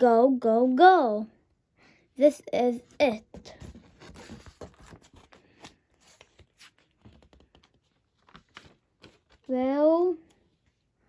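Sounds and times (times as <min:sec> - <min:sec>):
paper rustling: 0:03.0 - 0:10.9.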